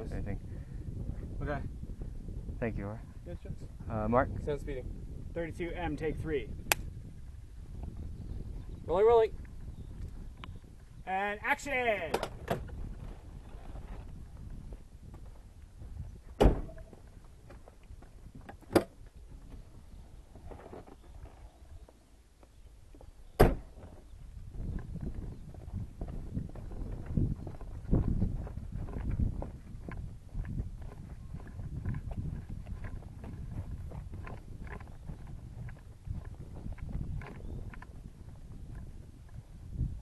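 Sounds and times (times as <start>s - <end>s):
camera rig rumbling over ground: 23.6s - 39.4s.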